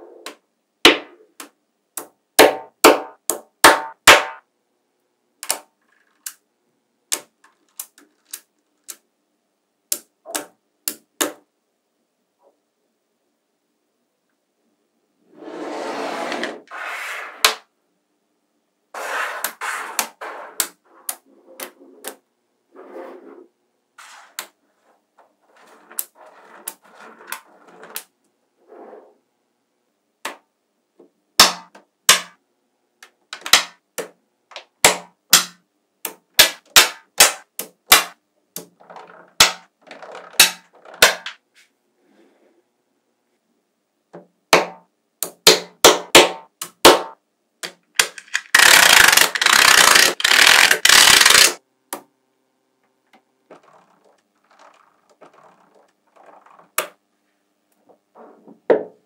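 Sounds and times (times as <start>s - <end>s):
magnetic balls clicking together: 47.6s - 51.6s
many balls rattling: 48.4s - 51.6s.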